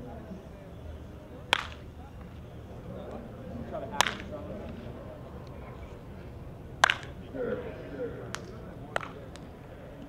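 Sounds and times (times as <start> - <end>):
faint background voices: 0.0 - 10.0
baseball bat hitting ball: 1.5 - 1.8, 3.9 - 4.4, 6.8 - 7.2, 8.3 - 9.4.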